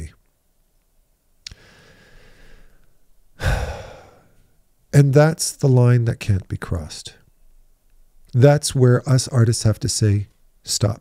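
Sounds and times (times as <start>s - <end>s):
man breathing close to microphone: 1.5s - 4.5s.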